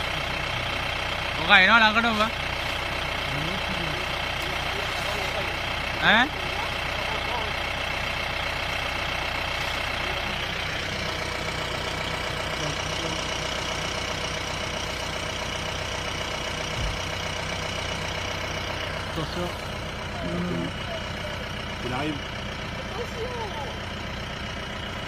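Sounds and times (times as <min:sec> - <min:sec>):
jeep engine idling: 0:00.0 - 0:25.0
low thump: 0:16.8 - 0:17.0.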